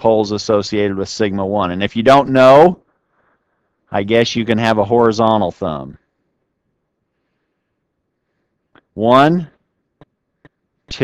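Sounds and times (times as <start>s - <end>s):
faint room hiss: 0.0s - 11.0s.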